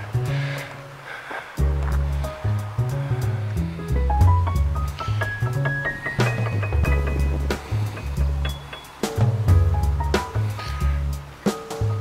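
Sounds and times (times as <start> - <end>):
low bass line: 1.6 - 12.0
melody stepping upward: 4.0 - 10.4
light percussion: 4.2 - 12.0.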